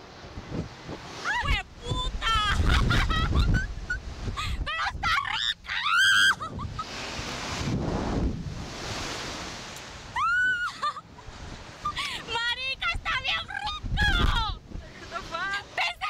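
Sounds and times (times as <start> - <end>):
wind rushing over microphone: 0.0 - 10.3, 11.2 - 15.7
people screaming: 4.8 - 6.6, 10.2 - 10.9.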